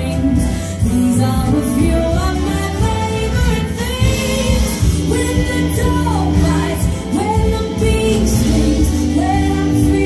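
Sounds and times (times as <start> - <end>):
backing track with bass line: 0.0 - 10.0.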